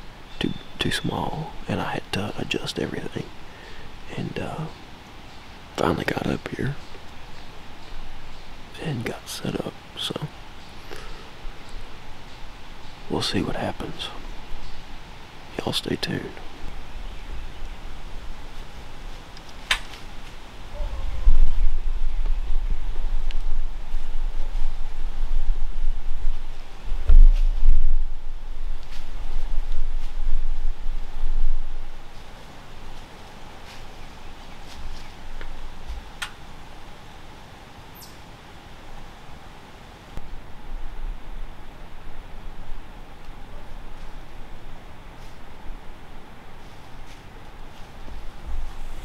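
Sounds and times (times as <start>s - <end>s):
wind buffeting microphone: 20.1s - 32.1s.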